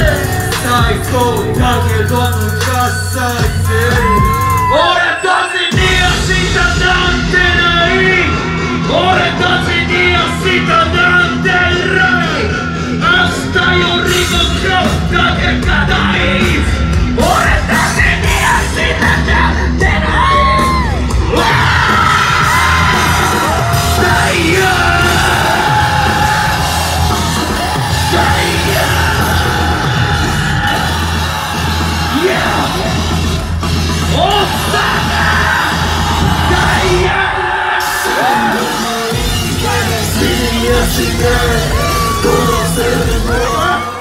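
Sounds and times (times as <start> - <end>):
hip-hop music over loud pa: 0.0 - 44.0
rapping over a bass-heavy beat: 0.0 - 44.0
shouted vocals: 3.4 - 6.1, 17.2 - 44.0
audience yelling: 3.6 - 6.4, 17.2 - 44.0.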